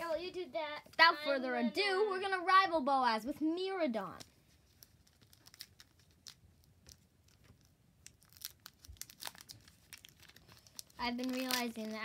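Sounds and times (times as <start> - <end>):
foil wrapper crinkling and tearing: 4.2 - 12.0.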